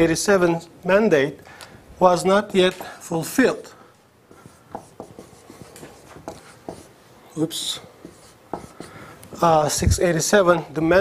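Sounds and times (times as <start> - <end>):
scratchy writing strokes on board: 4.3 - 7.0, 7.6 - 9.5.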